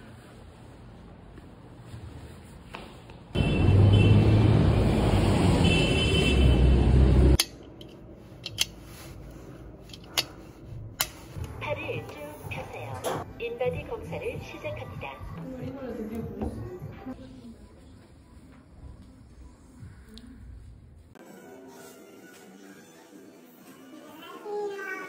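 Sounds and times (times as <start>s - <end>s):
street noise rush and rumble: 0.0s - 13.3s.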